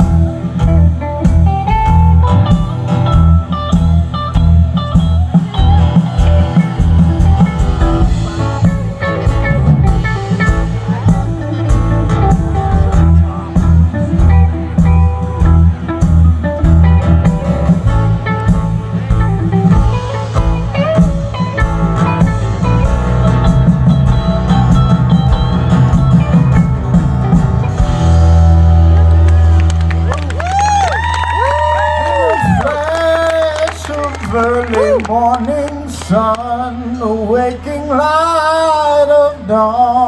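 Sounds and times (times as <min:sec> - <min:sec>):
bending guitar lead lines: 0:00.0 - 0:30.4
drum kit: 0:00.0 - 0:32.7
electric and acoustic guitars: 0:00.0 - 0:40.0.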